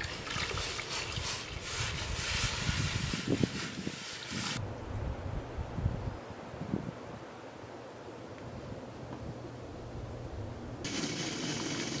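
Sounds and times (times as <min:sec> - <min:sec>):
faint wind noise: 0:00.0 - 0:10.9.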